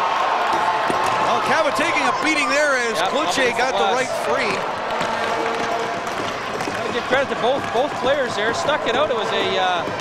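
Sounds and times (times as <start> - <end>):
crowd of spectators talking: 0.0 - 10.0.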